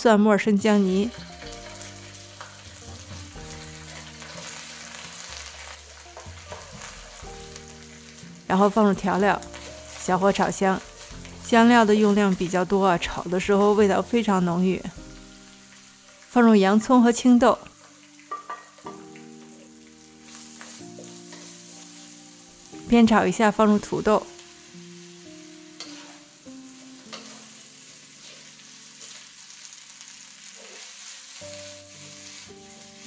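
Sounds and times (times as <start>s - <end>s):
gentle background music: 0.0s - 33.0s
garlic sizzling in hot oil: 0.4s - 33.0s.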